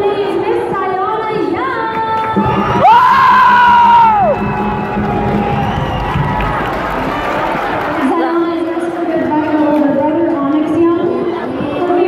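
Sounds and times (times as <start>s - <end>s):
crowd cheering and shouting: 2.2s - 9.4s
loud whoop: 2.4s - 7.9s.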